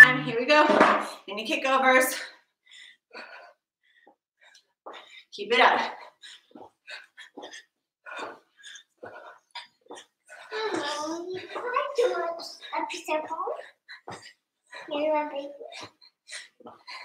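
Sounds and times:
young girl talking: 10.6 - 13.6, 14.9 - 15.8.

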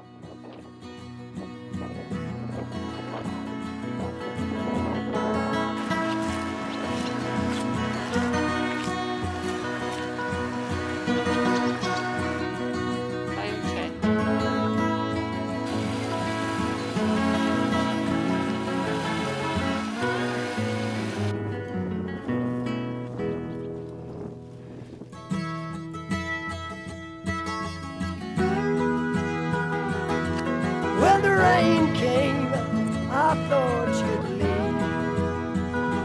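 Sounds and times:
folk-rock acoustic guitar music: 0.0 - 36.0.

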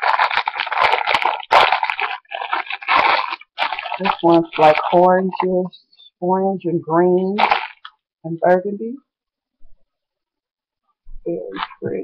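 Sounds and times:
crinkly packaging rustling: 0.0 - 5.7, 7.2 - 8.0, 11.5 - 12.0.

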